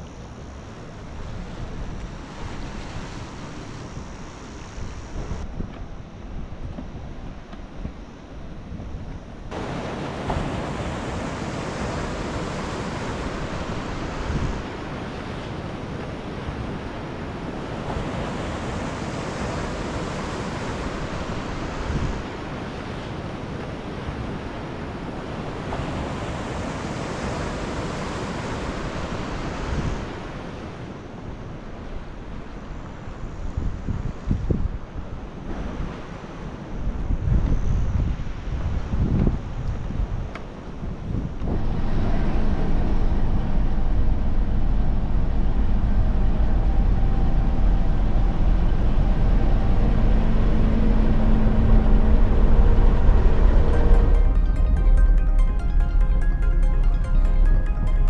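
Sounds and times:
wind buffeting microphone: 36.8s - 53.9s.

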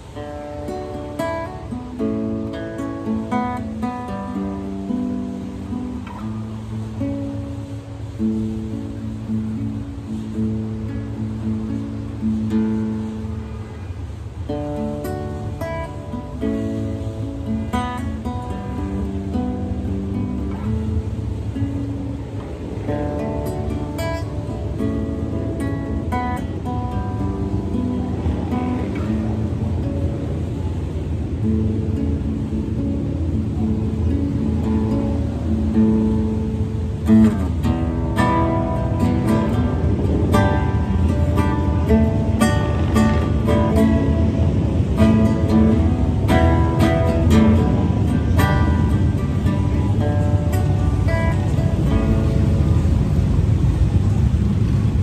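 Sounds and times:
classical guitar playing: 0.0s - 55.0s.

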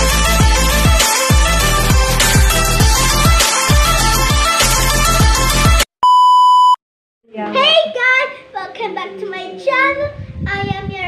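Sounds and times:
electronic music with heavy beat: 0.0s - 5.8s.

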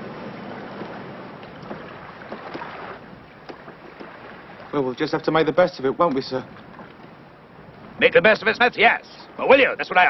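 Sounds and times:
steady wind: 0.0s - 10.0s
water noise: 0.0s - 10.0s
faint knocks on wooden boat: 0.7s - 4.4s.

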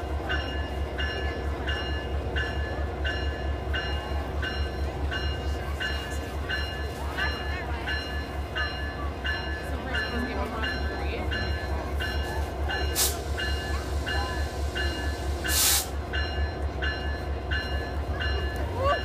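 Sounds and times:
diesel locomotive rumbling: 0.0s - 19.0s.

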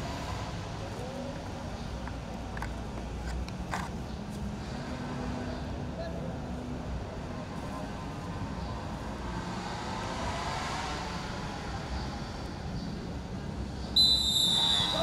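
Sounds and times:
steady background noise: 0.0s - 15.0s
referee's whistle blast: 14.0s - 15.0s.

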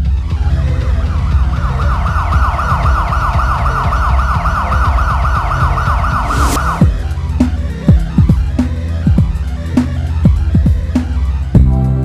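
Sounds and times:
heavy pulsing bass beat: 0.0s - 12.0s
siren-like wail: 0.3s - 7.3s
rising whoosh: 0.5s - 7.6s.

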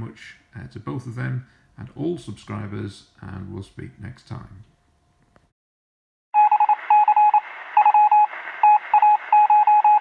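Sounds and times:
morse code beeping: 6.4s - 10.0s
radio hiss: 6.7s - 9.4s.

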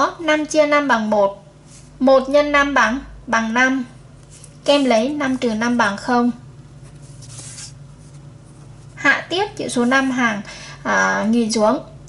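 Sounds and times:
ruler rustling on paper: 4.2s - 6.0s, 6.8s - 8.9s.

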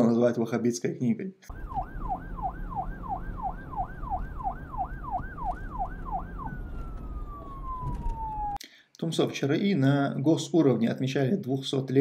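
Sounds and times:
siren yelping: 1.5s - 8.6s.

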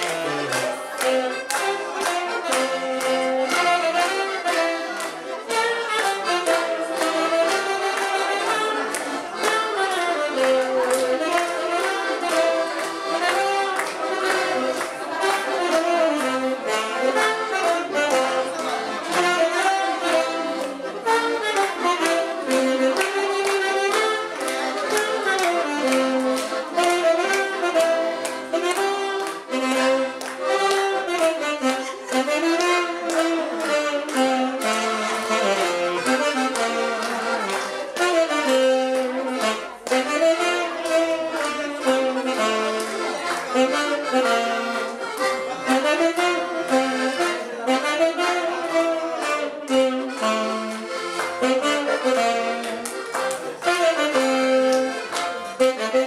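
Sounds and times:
accordion: 0.0s - 56.0s
saxophone: 0.0s - 56.0s.

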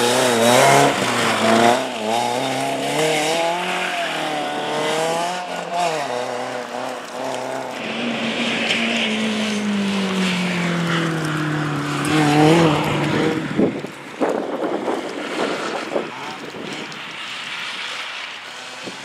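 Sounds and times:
car engine revving: 0.0s - 19.0s.

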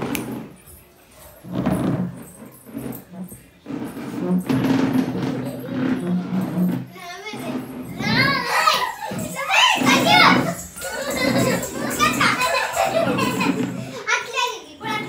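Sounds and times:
children shouting and squealing: 6.9s - 15.0s.

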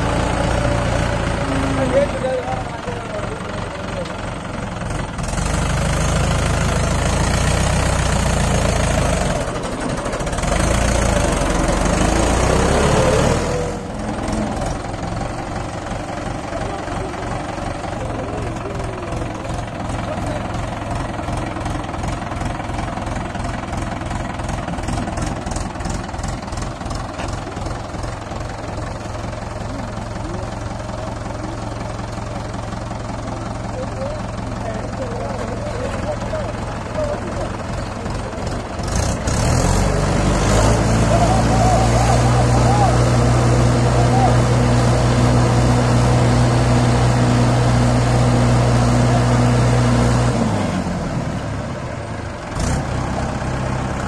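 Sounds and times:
diesel tractor engine revving: 0.0s - 54.0s.

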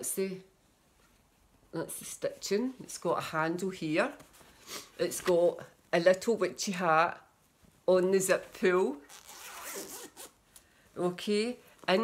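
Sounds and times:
zip being drawn: 9.0s - 10.4s.

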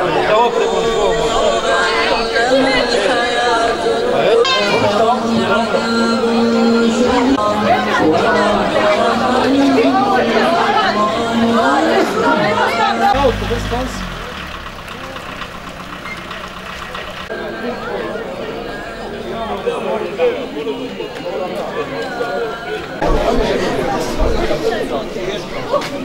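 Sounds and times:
many people talking: 0.0s - 26.0s.

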